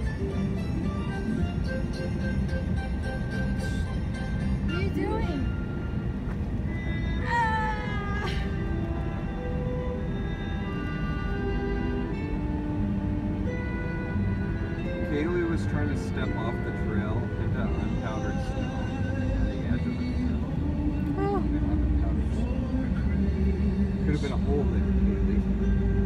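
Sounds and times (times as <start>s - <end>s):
car rumble inside cabin: 0.0s - 26.0s
music of long held notes: 0.0s - 26.0s.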